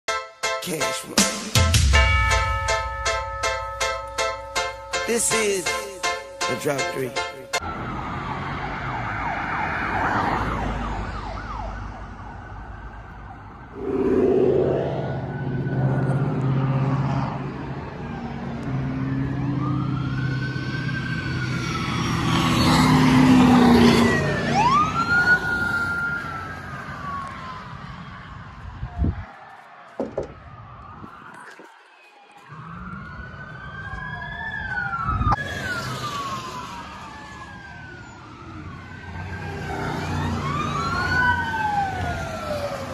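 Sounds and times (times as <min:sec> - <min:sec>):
police sirens wailing: 0:00.9 - 0:42.9
passing car engines and tyres: 0:07.5 - 0:31.2, 0:32.5 - 0:42.9.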